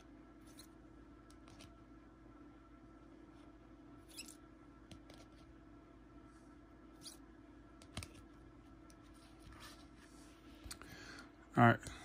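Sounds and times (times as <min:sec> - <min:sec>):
faint hum: 0:00.0 - 0:12.0
plastic card holders squeaking: 0:04.0 - 0:04.4.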